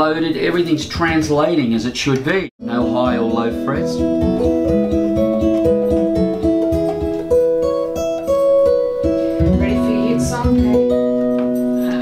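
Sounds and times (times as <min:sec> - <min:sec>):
acoustic guitar picked notes: 0:02.6 - 0:12.0.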